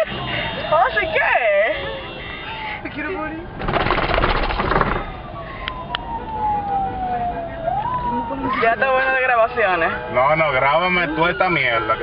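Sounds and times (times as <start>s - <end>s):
siren wailing: 4.5s - 12.0s.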